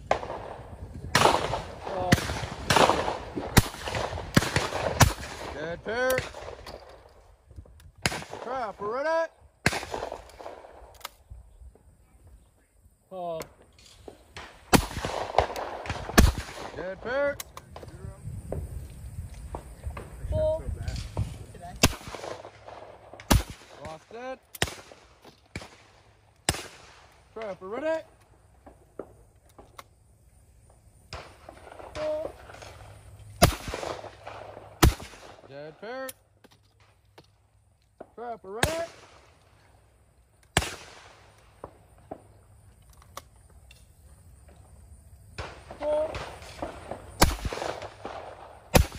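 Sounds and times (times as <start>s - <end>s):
shotgun shot: 0.0s - 6.7s, 9.6s - 10.9s, 14.3s - 17.3s, 20.9s - 28.0s, 33.4s - 35.5s, 38.5s - 39.3s, 40.6s - 41.7s, 45.4s - 48.9s
person calling a command: 8.4s - 9.4s, 31.9s - 32.4s, 45.8s - 46.2s.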